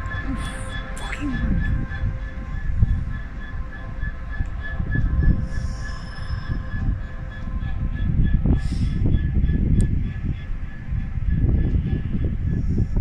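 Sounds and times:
high-pitched whine: 0:00.0 - 0:13.0
train wheels rumbling on rails: 0:00.0 - 0:13.0.

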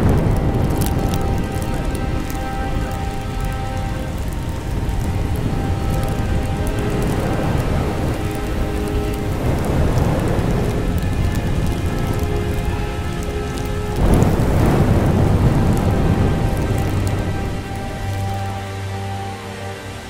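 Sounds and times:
rumble of thunder: 0:00.0 - 0:18.6
steady rush of rain: 0:00.0 - 0:20.0
sustained music notes: 0:00.0 - 0:20.0.

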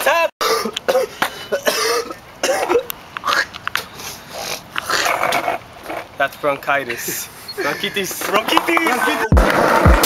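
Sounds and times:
person hacking cough: 0:00.1 - 0:03.5.

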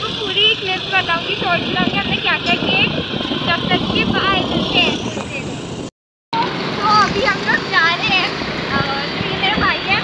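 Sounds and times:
scooter engine and road noise: 0:00.0 - 0:10.0.

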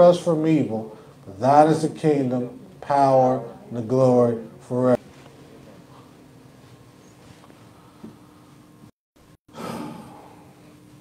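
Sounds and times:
faint steady hum: 0:00.0 - 0:11.0
person exhaling close to microphone: 0:09.5 - 0:10.7.

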